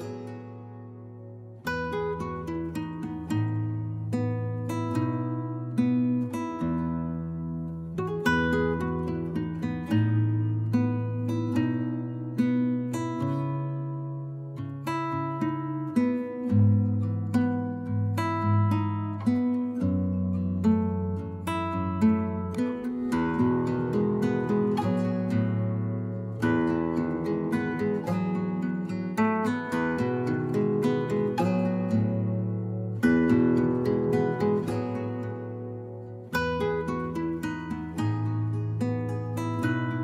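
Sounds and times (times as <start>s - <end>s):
acoustic guitar picking: 0.0s - 40.0s.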